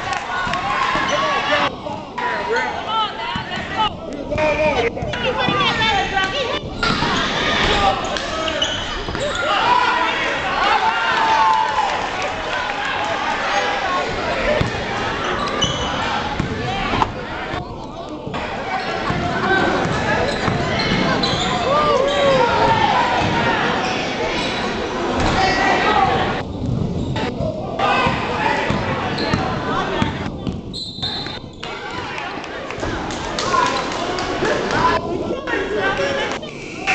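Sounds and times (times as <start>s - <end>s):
spectators' voices: 0.0s - 36.9s.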